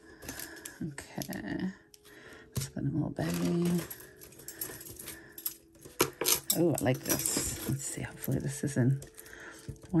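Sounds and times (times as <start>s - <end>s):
metal jewelry clinking: 0.2s - 10.0s.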